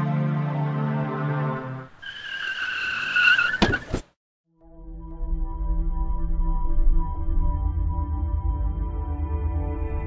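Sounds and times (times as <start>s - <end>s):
background music: 0.0s - 2.0s, 4.6s - 10.0s
car tyres screeching: 1.9s - 4.2s.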